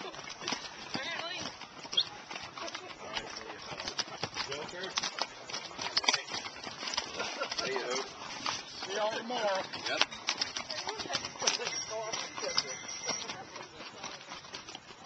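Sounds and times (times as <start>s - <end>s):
mule hooves clopping: 0.0s - 15.0s
people talking: 7.1s - 15.0s.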